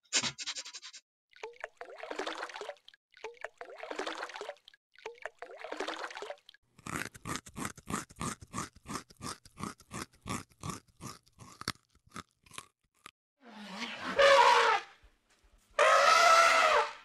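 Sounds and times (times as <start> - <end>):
loud animal sound: 13.5 - 15.0, 15.8 - 17.0.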